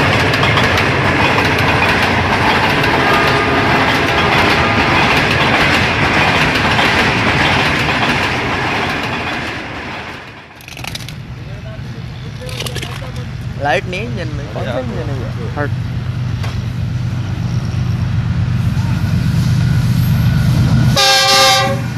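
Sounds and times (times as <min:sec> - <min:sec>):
train wheels clattering over rails: 0:00.0 - 0:11.2.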